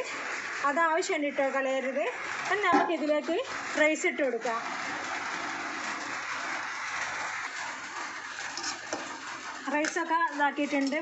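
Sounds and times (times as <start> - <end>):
hot oil sizzling in a pot: 0.0 - 11.0.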